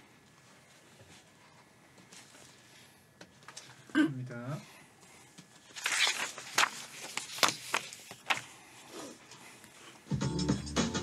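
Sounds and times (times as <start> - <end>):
paper rustling: 5.4 - 8.9
paper crackling: 5.6 - 8.6.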